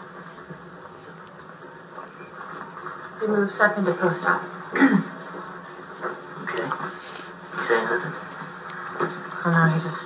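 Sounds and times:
television soundtrack hum and hiss: 0:00.0 - 0:10.0.

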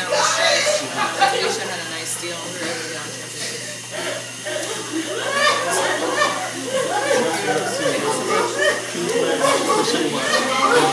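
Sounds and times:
voices talking: 0:00.0 - 0:10.9.

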